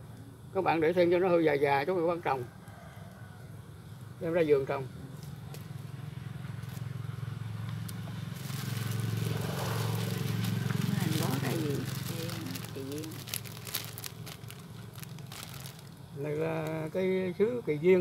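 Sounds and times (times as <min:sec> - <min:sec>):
vehicle engine hum passing: 0:04.8 - 0:16.2
plastic bag crackling: 0:07.8 - 0:16.8.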